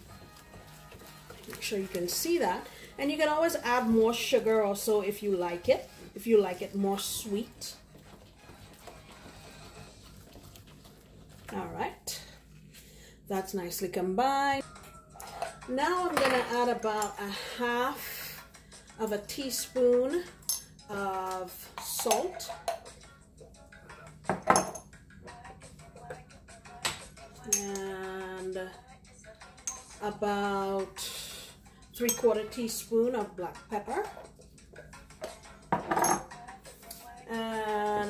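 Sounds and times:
batter mixed in metal bowl: 0.0 - 12.4
faint background music: 0.0 - 38.0
ceramic pot clinking on stone: 35.7 - 36.3.

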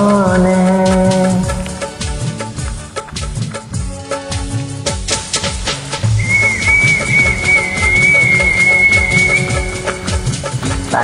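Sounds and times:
steady drum beat: 0.0 - 11.0
high whistle-like note: 6.1 - 10.5.

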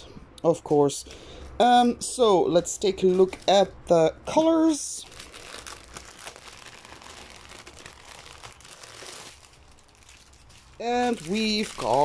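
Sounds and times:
plastic bag crinkling: 5.0 - 12.0.

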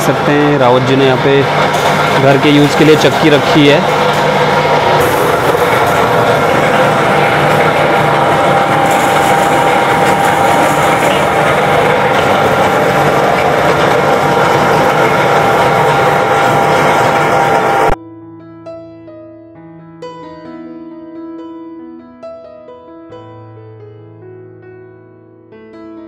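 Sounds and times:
flour mill grinding: 0.0 - 18.0
motor hum: 0.0 - 18.0.

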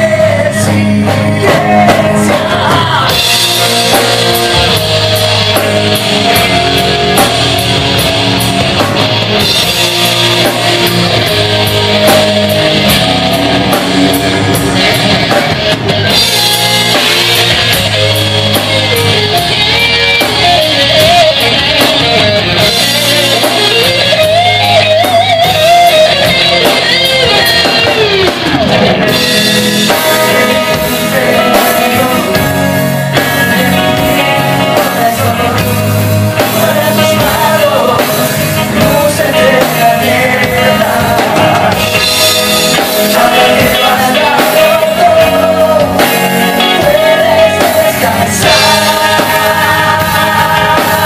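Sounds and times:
bass guitar: 0.0 - 51.0
bending guitar lead line: 0.0 - 51.0
drum kit: 0.0 - 51.0
electric guitars: 0.0 - 51.0.

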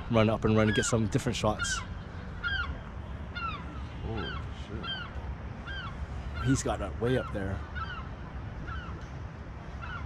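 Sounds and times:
bird honking: 0.6 - 9.0, 9.8 - 10.0.

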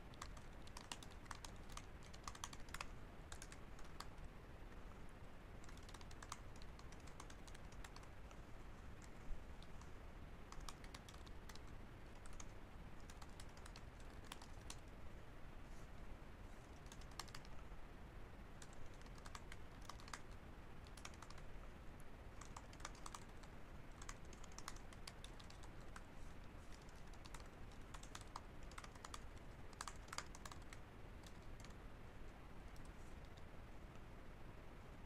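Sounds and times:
keyboard typing: 0.0 - 4.2, 5.6 - 9.9, 10.5 - 14.9, 16.7 - 17.6, 18.6 - 21.4, 22.4 - 33.5.

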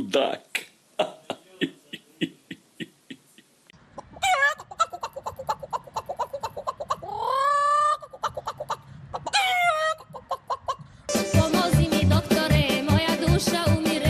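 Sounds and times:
rapid chicken-like clucking: 1.3 - 10.9
squawking calls: 1.8 - 10.8.

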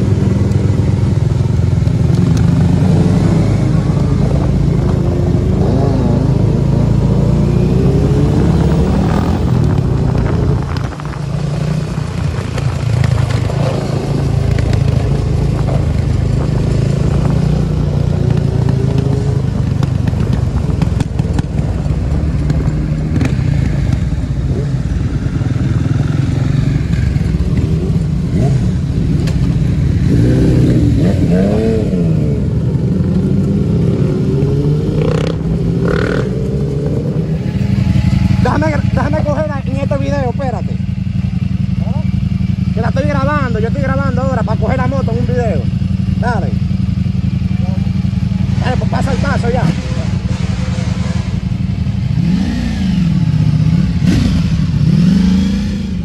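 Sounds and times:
engine revving: 0.0 - 40.8, 47.5 - 56.0
motorcycle engines running: 0.0 - 56.0.

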